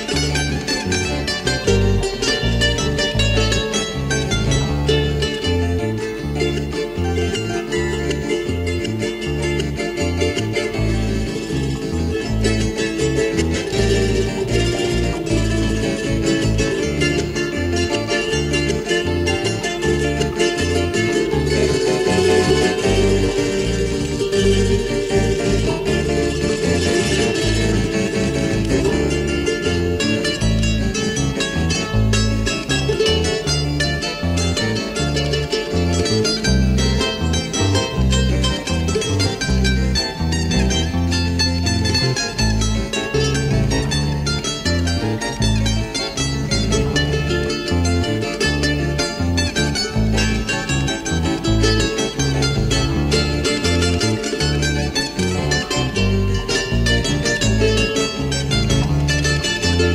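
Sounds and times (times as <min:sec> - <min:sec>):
bass line: 0:00.0 - 0:59.9
plucked charango melody: 0:00.0 - 0:59.9.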